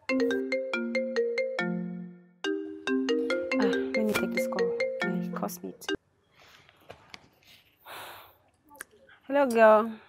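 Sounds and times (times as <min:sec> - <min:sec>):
mobile phone melodic ringtone: 0:00.0 - 0:06.0.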